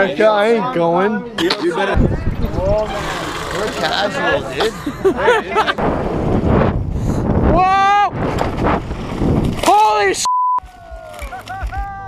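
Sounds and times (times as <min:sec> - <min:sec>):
wind noise: 0:01.9 - 0:03.3, 0:05.6 - 0:12.0
bike tyres on dirt: 0:06.0 - 0:12.0.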